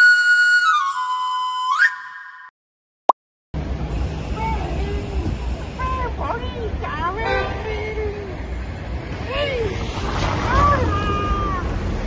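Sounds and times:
synthesized whistle-like tone sweeping up: 0.6 - 2.6.

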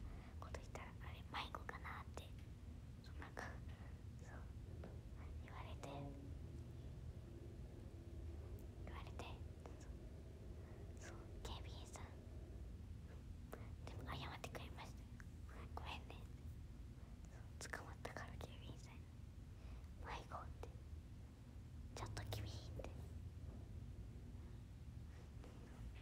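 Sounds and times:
low room hum: 0.0 - 26.0
whispered speech: 0.4 - 2.4, 3.0 - 6.3, 8.8 - 9.9, 11.0 - 12.2, 13.6 - 16.4, 17.3 - 19.0, 20.0 - 20.7, 22.0 - 23.1.

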